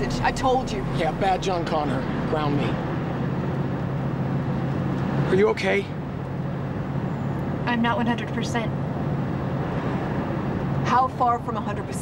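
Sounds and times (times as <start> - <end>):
car cabin road noise: 0.0 - 12.0.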